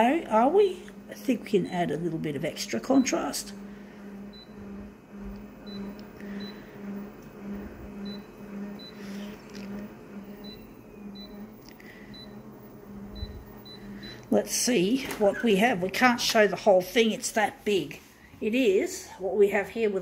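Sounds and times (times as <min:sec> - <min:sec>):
pulsing low hum: 0:00.0 - 0:14.7
touch panel beeps: 0:13.1 - 0:14.3.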